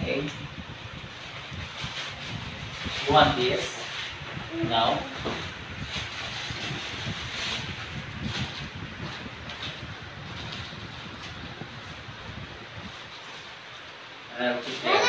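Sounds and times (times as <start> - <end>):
fan airflow on microphone: 0.0 - 15.0.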